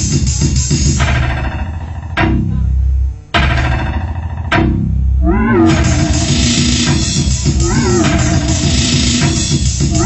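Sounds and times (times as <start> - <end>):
wavering pitched wail: 5.2 - 10.0.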